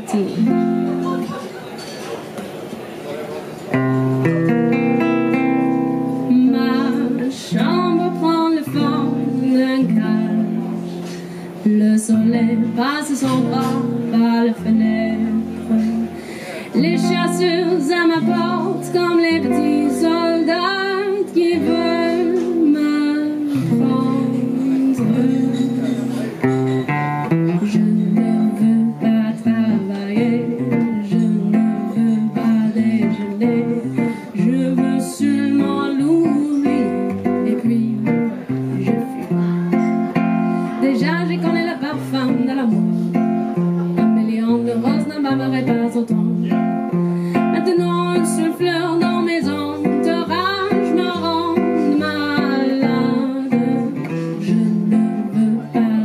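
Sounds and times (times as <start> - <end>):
acoustic guitar playing: 0.0 - 56.0.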